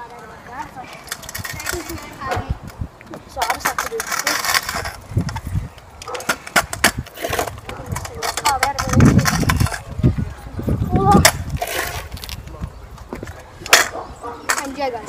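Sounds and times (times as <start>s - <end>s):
scooter wheels rumbling on concrete: 0.0s - 15.0s.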